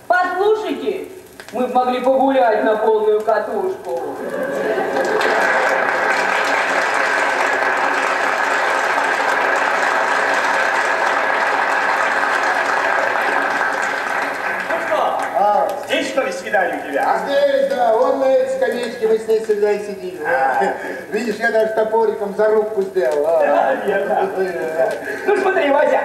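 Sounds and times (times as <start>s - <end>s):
audience applauding: 4.2s - 19.3s, 23.5s - 26.0s.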